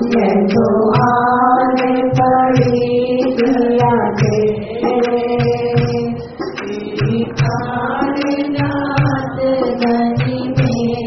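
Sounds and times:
devotional chanting with drone: 0.0 - 11.0
drum strokes: 0.0 - 11.0.

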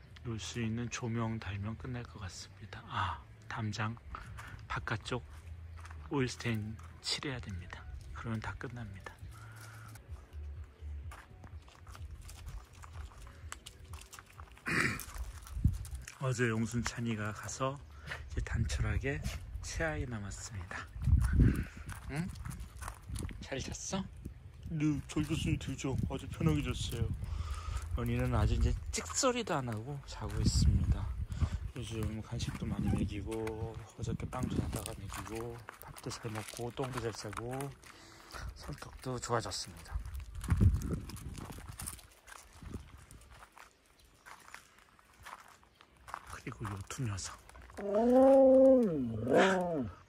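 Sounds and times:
footsteps crunching on gravel: 0.0 - 50.0
dog making low sound: 47.8 - 50.0.

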